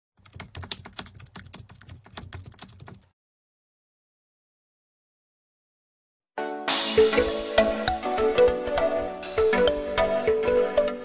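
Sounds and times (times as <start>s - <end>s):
keyboard typing clicks: 0.2s - 3.1s.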